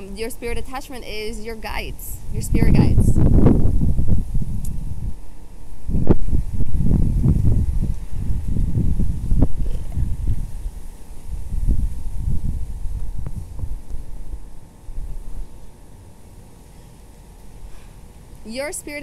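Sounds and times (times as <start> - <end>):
wind gusts on microphone: 0.0 - 15.6.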